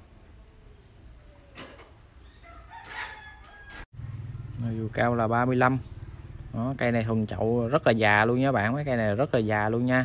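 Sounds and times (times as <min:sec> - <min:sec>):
rooster crowing faintly: 0:02.4 - 0:04.6.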